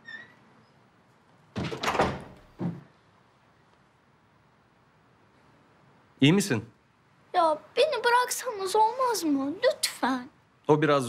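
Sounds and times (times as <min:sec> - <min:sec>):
door squeak: 0:00.0 - 0:00.8, 0:01.6 - 0:02.8
door closing thud: 0:01.5 - 0:02.9.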